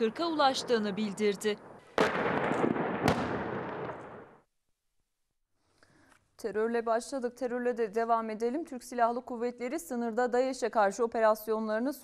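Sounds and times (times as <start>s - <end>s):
loud gunshots with rolling echo: 0.0s - 4.4s.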